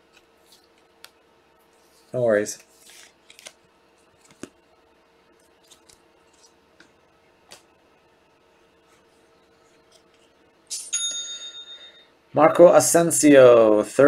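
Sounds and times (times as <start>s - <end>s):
trading cards clicking and rustling: 2.5s - 4.6s, 5.3s - 7.7s
bell-like ding: 10.8s - 12.1s.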